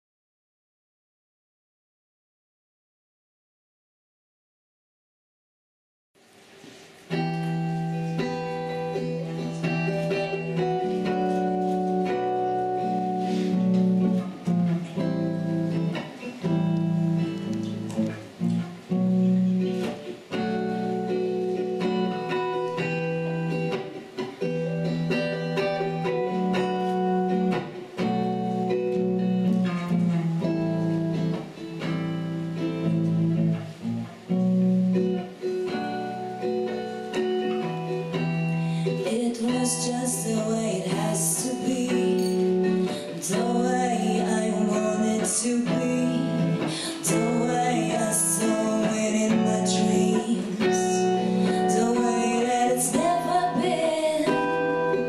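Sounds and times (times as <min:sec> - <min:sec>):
acoustic guitar picking chords: 0:06.5 - 0:55.0.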